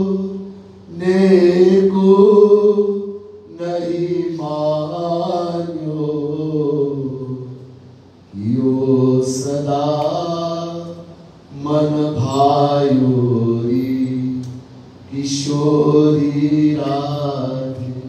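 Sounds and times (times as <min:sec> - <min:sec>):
man chanting devotional verse: 0:00.0 - 0:07.6, 0:08.3 - 0:14.5, 0:15.1 - 0:18.0.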